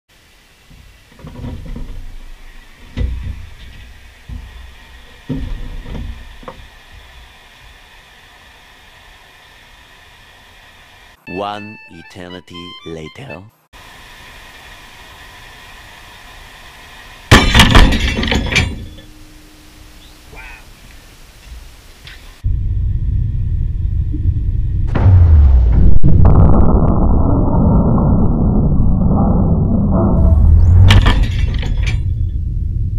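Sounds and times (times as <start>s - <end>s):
debris clattering: 0.7s - 7.4s, 17.3s - 19.8s, 30.7s - 32.4s
low rumble: 22.4s - 32.9s
loud bang: 22.5s - 32.9s
glass shattering: 30.9s - 32.2s.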